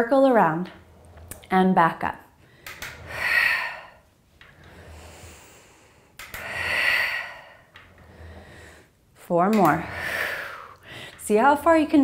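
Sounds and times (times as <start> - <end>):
woman breathing heavily: 2.4 - 11.8.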